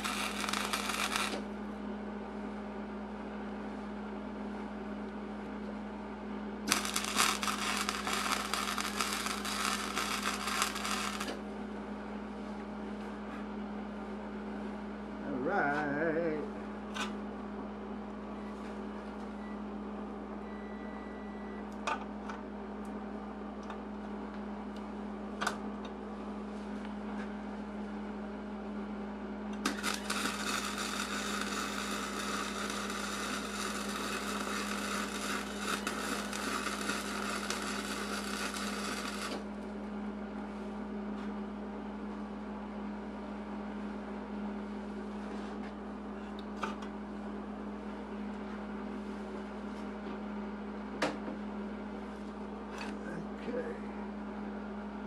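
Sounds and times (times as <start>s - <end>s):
welding arc crackling and hissing: 0.0s - 1.5s, 6.7s - 11.4s, 29.6s - 39.5s
steady low hum: 0.0s - 55.0s.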